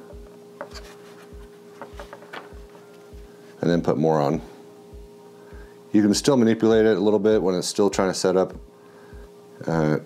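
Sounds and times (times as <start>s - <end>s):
faint background music with beat: 0.0s - 10.0s.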